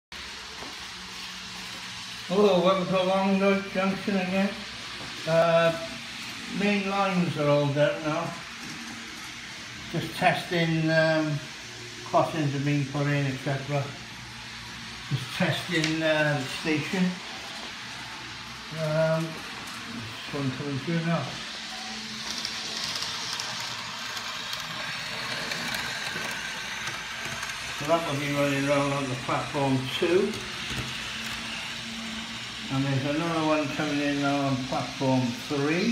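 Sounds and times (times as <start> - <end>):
model trains running on track: 0.2 - 35.9.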